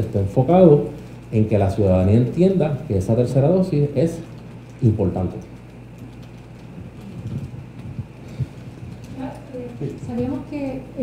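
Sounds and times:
low electrical hum: 0:00.0 - 0:11.0
faint low murmuring: 0:06.6 - 0:11.0.

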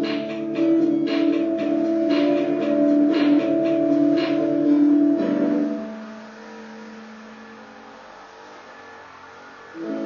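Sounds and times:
faint hiss: 0:01.7 - 0:10.0.

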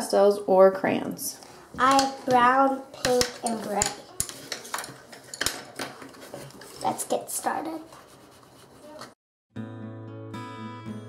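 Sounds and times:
pencils tapping on a tabletop: 0:01.8 - 0:07.2.

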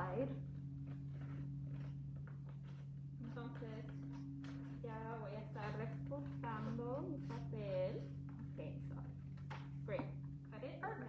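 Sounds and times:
steady low room hum: 0:00.0 - 0:11.0
scissors snipping paper: 0:05.6 - 0:07.6.

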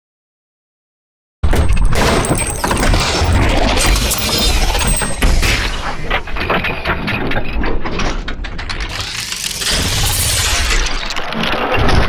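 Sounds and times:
crackling sci-fi sound effects: 0:05.4 - 0:12.0.

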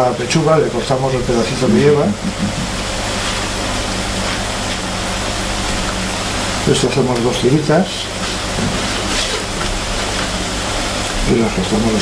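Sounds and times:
onion sizzling in a frying pan: 0:02.7 - 0:11.3.

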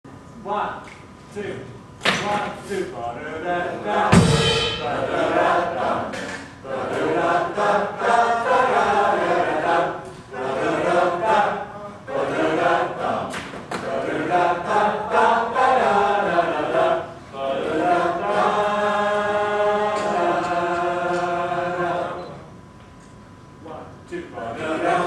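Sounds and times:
group scat singing: 0:03.2 - 0:22.5, 0:24.4 - 0:25.0.

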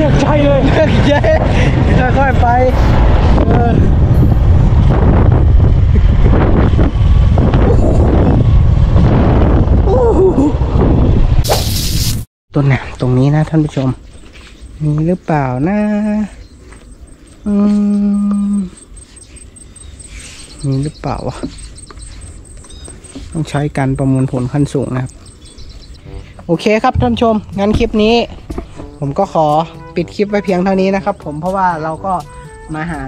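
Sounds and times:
wind buffeting microphone: 0:00.0 - 0:11.4
quiet outdoor background: 0:11.3 - 0:33.0.

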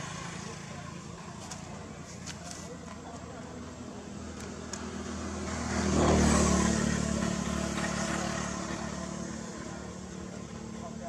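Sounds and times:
vehicle engine passing by: 0:03.8 - 0:11.0.

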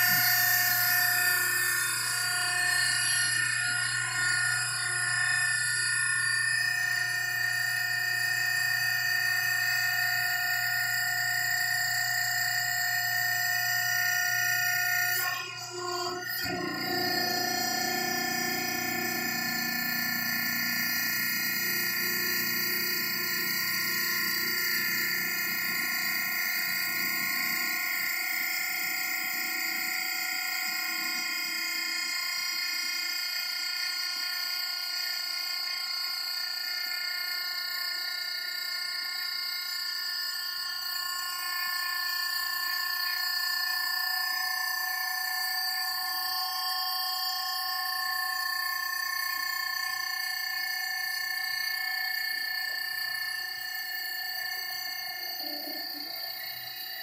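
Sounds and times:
hydraulic pump whine: 0:00.0 - 0:57.0.

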